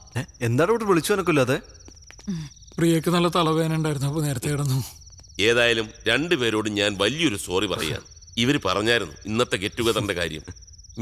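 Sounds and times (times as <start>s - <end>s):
crickets trilling: 0.0s - 11.0s
man speaking: 2.8s - 10.5s.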